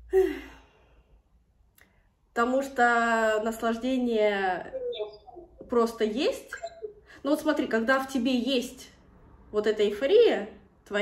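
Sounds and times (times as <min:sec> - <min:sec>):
woman sighing: 0:00.0 - 0:00.8.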